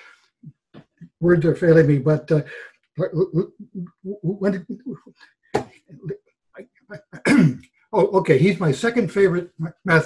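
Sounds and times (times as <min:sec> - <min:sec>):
faint mouth sounds: 0:01.2 - 0:05.2
man speaking: 0:01.2 - 0:05.2, 0:06.9 - 0:10.0
man clearing throat: 0:07.0 - 0:08.7.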